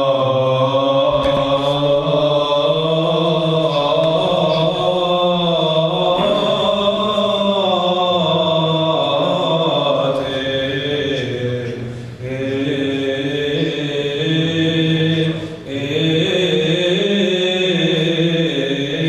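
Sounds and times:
choir singing a chant: 0.0 - 19.0
held low vocal drone: 0.0 - 19.0.

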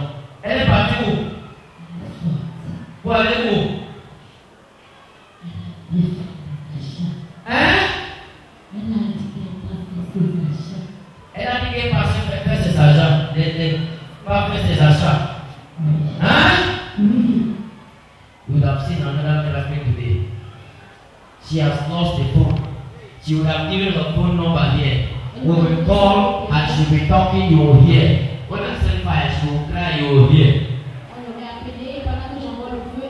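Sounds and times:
person speaking into a microphone: 0.0 - 4.1, 5.4 - 17.6
low-pitched vocal sounds: 1.8 - 3.0, 17.0 - 17.6.

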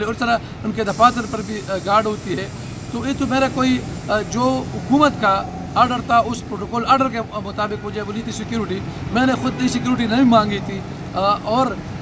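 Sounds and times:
man speaking: 0.0 - 11.8
steady background hiss: 0.0 - 12.0.

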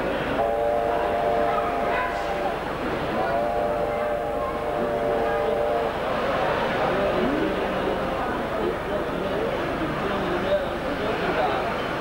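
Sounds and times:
crowd chatter: 0.0 - 12.0
model locomotive horn: 0.4 - 2.4, 3.2 - 6.3.

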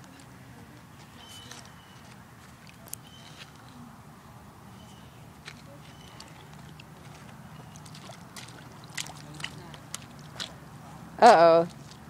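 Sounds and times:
boots splashing in puddle: 5.4 - 12.0.

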